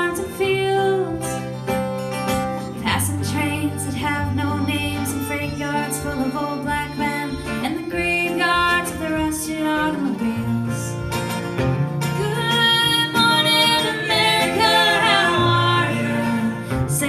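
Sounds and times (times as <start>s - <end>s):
woman singing: 0.0s - 1.6s, 2.6s - 11.1s, 12.0s - 17.0s
fiddle: 0.0s - 17.0s
strummed acoustic guitar: 0.0s - 17.0s.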